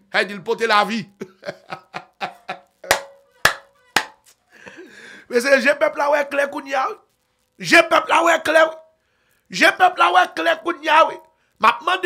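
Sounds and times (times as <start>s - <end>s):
man laughing: 1.2s - 4.9s
man clapping hands: 2.9s - 4.4s.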